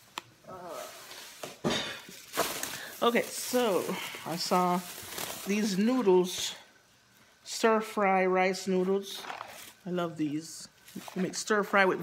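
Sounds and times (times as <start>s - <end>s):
grocery bag and packaging rustling: 0.6s - 6.7s, 8.5s - 12.0s.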